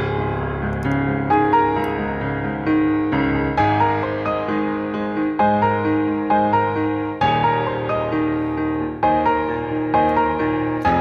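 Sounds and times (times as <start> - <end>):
slow piano music: 0.0 - 11.0.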